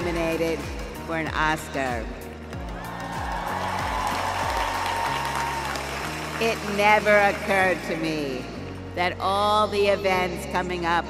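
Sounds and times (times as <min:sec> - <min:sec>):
stadium crowd applauding and cheering: 0:02.2 - 0:08.9.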